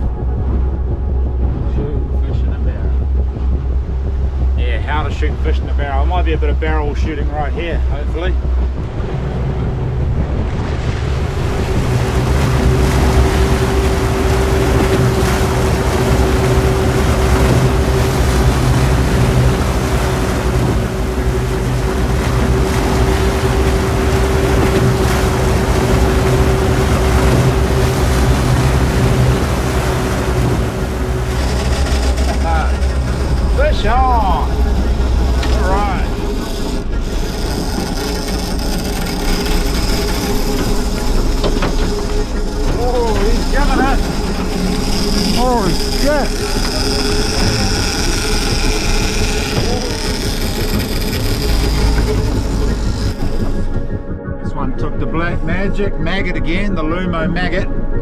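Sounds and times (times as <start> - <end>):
wind noise: 0.0 - 35.6
boat motor running: 0.0 - 58.0
water noise: 0.0 - 58.0.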